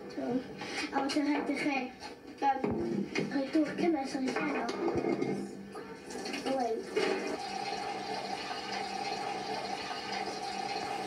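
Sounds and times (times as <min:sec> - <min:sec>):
children's voices: 0:00.0 - 0:05.0
tap water running into plastic jug: 0:06.1 - 0:11.0.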